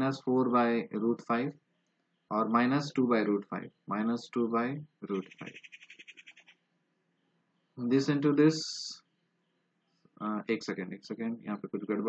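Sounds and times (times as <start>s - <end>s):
small animal chirping trill: 5.1s - 6.6s.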